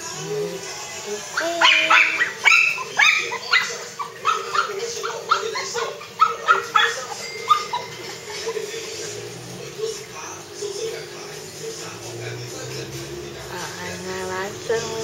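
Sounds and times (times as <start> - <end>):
small dog barking and yipping: 1.4 - 8.6.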